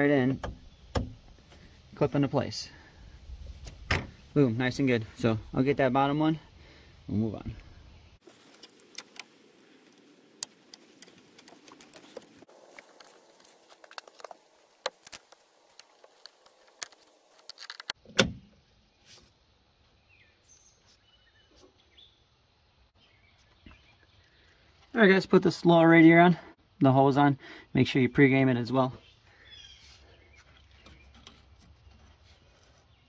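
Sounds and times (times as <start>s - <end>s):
clicks and rattles of hose fittings: 8.4s - 18.0s.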